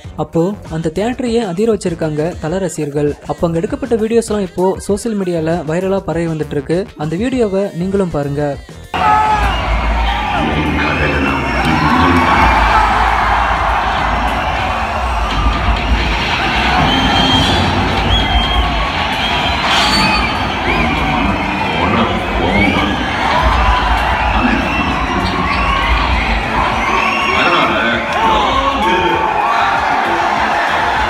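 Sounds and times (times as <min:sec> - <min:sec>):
loud soundtrack music with heavy bass: 0:08.3 - 0:31.0
audience cheering and whistling: 0:09.0 - 0:31.0.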